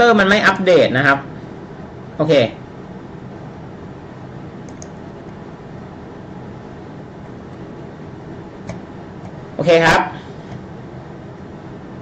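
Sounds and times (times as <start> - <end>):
electric fan whooshing hum: 0.0 - 12.0
faint clicks: 4.7 - 5.4.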